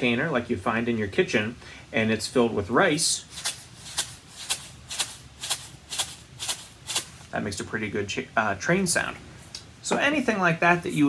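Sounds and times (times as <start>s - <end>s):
rice shaker rattling: 3.2s - 7.2s.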